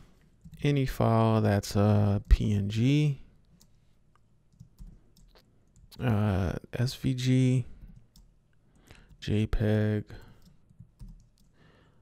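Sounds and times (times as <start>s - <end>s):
keyboard typing: 4.5s - 6.1s, 7.7s - 9.2s, 10.1s - 11.6s.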